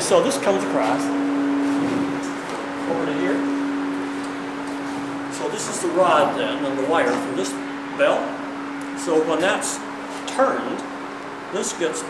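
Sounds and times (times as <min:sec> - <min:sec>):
large bell ringing: 0:00.0 - 0:11.0.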